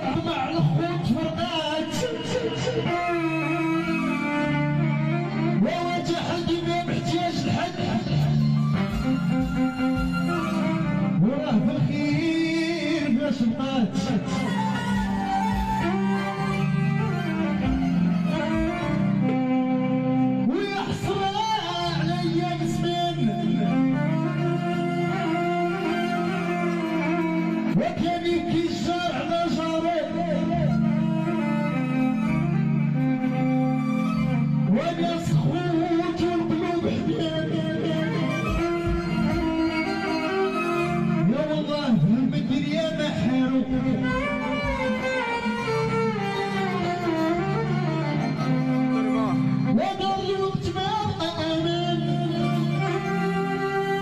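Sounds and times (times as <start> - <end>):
bowed violin melody: 0.0 - 54.0
live band music: 0.6 - 13.0, 13.9 - 28.9, 30.1 - 54.0.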